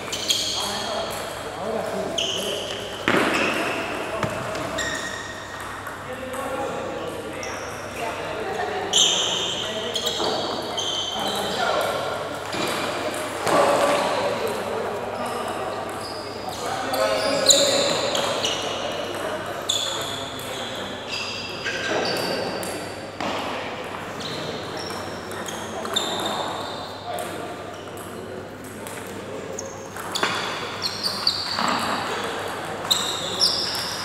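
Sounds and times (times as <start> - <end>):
sneakers squeaking on floor: 0.0 - 5.9, 8.9 - 11.9, 15.2 - 22.8, 24.1 - 27.1, 29.5 - 34.0.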